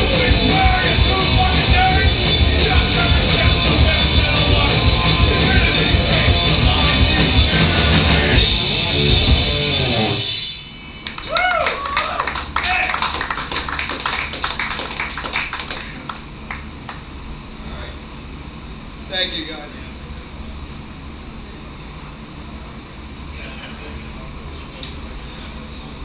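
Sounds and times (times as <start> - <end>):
punk band playing loudly: 0.0 - 10.5
audience clapping: 11.0 - 17.1
audience whoops and shouts: 11.2 - 13.0.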